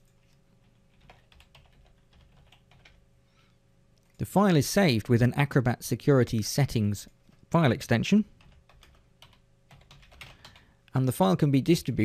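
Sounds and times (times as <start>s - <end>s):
faint typing on keyboard: 0.0s - 3.0s, 8.3s - 10.8s.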